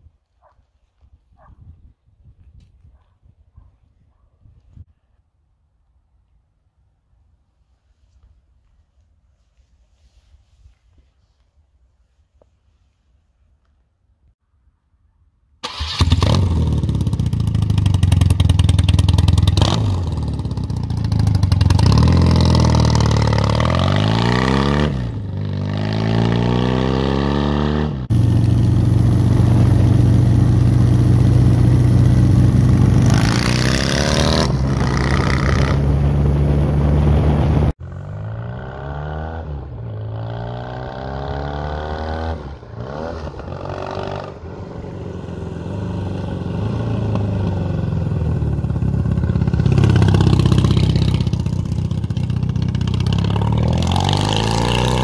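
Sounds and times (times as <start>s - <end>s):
motorcycle engine revving: 15.6s - 55.0s.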